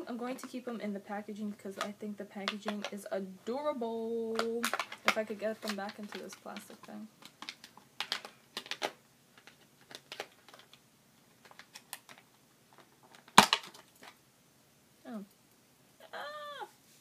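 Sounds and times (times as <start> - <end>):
plastic blister packaging clicking: 4.4 - 10.8, 11.4 - 14.2.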